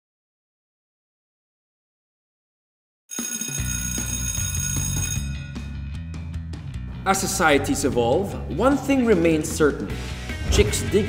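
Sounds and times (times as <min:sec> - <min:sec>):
bright ringing music: 0:03.2 - 0:05.8
low bass: 0:05.3 - 0:11.0.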